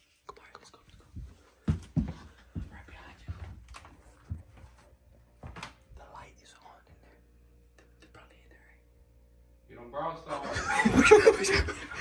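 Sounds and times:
hushed whispering: 0.1 - 1.2, 2.6 - 3.5, 5.9 - 8.9
laughter: 10.3 - 12.0.

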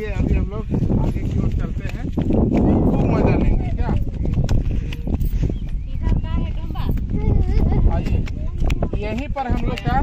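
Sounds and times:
footsteps on rock: 0.0 - 10.0
wind buffeting microphone: 0.0 - 10.0.

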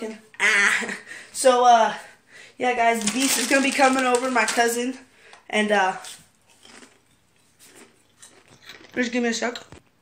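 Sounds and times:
chewing and crunching chip: 6.0 - 9.8.

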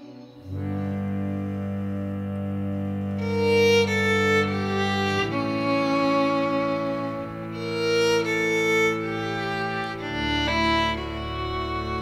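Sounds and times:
held low chord music: 0.0 - 12.0.

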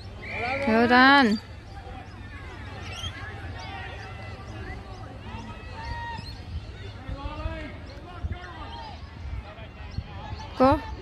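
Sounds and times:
distant shouts and calls: 0.0 - 11.0
wind rumble on microphone: 1.3 - 11.0.

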